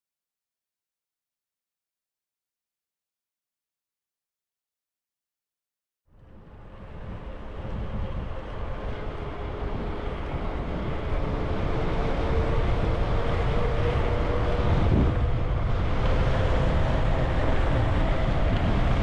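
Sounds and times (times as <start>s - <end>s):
wind buffeting microphone: 6.2s - 19.0s.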